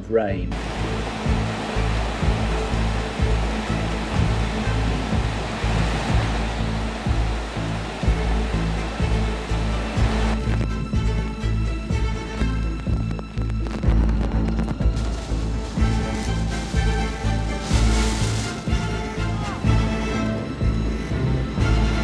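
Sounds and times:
heavy rain: 0.5 - 22.0
music with low beat: 0.5 - 22.0
wind rushing: 0.5 - 22.0.

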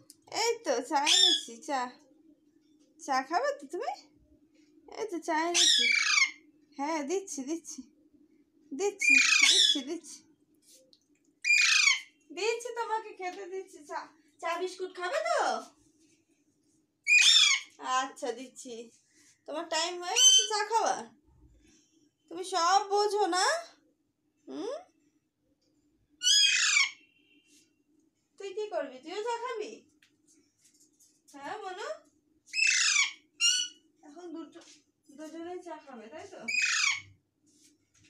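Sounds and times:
parakeet squawking: 1.0 - 1.6, 5.5 - 6.4, 9.0 - 9.9, 11.4 - 12.1, 17.1 - 17.7, 20.1 - 20.7, 26.2 - 27.1, 32.5 - 33.8, 36.5 - 37.1.

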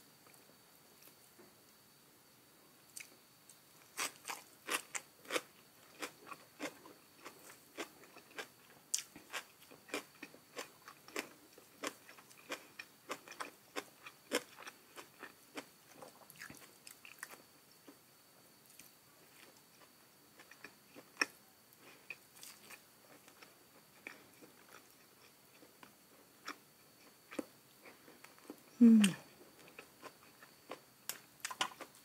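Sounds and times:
chewing crisp leafy greens: 3.8 - 18.0, 18.6 - 32.0.

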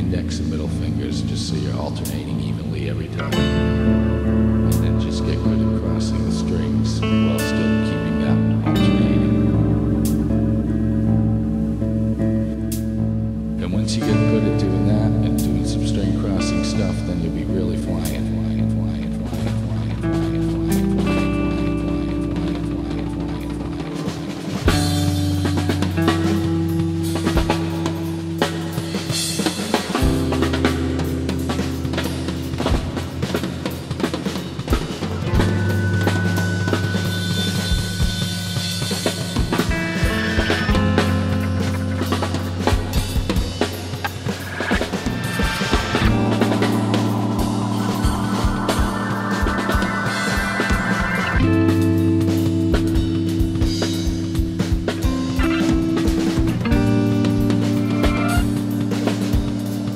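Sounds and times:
drum kit played with sticks: 0.0 - 11.4, 12.4 - 59.9
instrumental post-rock: 0.0 - 59.9
low sustained notes: 0.0 - 59.9.

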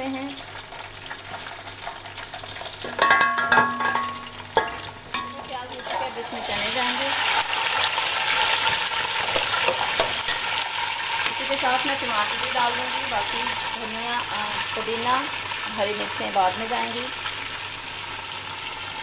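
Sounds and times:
chickpeas sizzling in oil: 0.0 - 19.0
onions frying in hot oil: 0.0 - 19.0
metal spoon knocking pot: 2.8 - 5.5.

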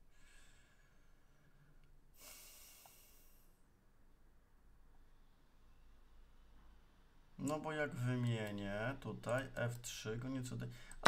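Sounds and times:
breath out through nose: 2.2 - 3.6.

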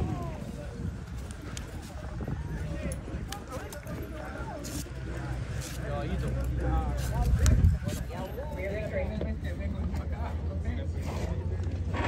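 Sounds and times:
horse hooves on dirt: 0.0 - 10.1
people talking: 0.0 - 12.0.

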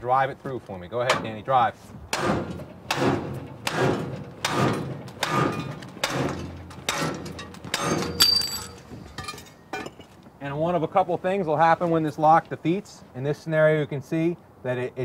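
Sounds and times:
axe striking metal bar: 2.1 - 9.4.

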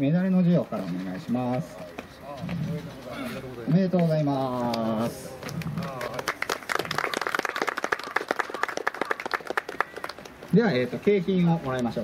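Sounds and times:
people applauding: 5.4 - 10.5.

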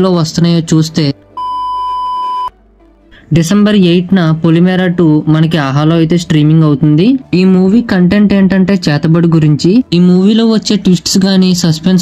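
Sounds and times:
high-pitched electronic beep: 1.4 - 2.5.

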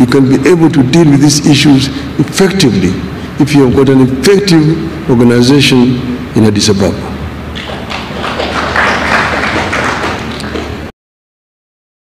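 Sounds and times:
audience applauding: 7.6 - 10.9.

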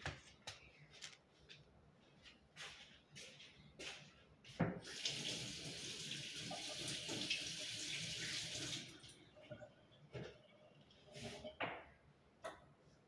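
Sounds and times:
tap water running: 4.8 - 9.6.

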